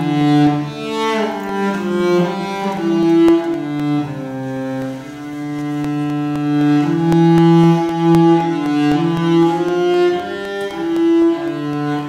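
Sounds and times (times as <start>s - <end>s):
bowed cello: 0.0s - 12.0s.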